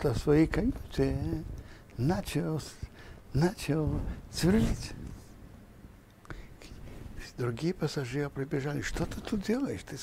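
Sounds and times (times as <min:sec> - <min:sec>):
soft breathing: 0:01.5 - 0:02.0, 0:02.8 - 0:03.3, 0:06.2 - 0:07.2.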